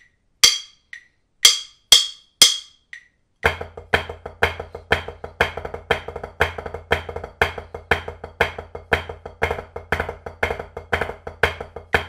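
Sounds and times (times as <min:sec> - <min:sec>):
faint metronome ticks: 0:00.0 - 0:03.6
drumsticks on practice pad: 0:00.0 - 0:12.0.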